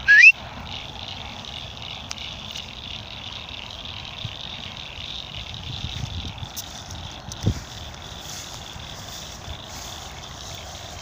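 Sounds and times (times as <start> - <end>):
rising whistle: 0.0 - 0.4.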